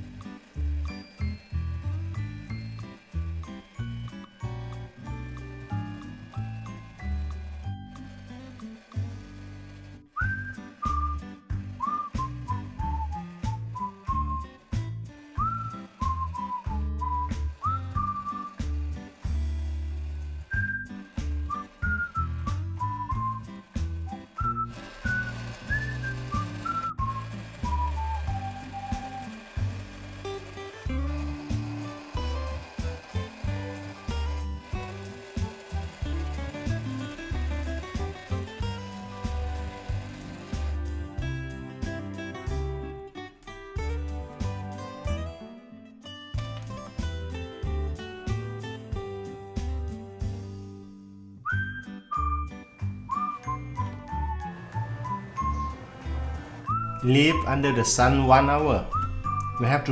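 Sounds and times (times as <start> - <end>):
whistled melody: 10.0 - 19.6, 20.4 - 42.8, 51.4 - 59.9.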